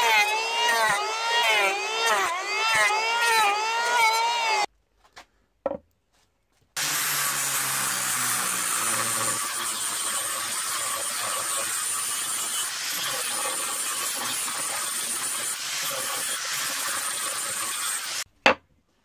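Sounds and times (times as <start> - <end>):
angle grinder sanding wood: 0.0 - 4.7, 6.8 - 18.3.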